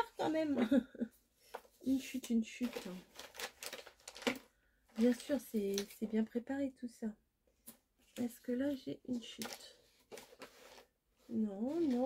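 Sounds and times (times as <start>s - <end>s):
paper rustling: 1.5s - 6.1s, 8.1s - 12.0s.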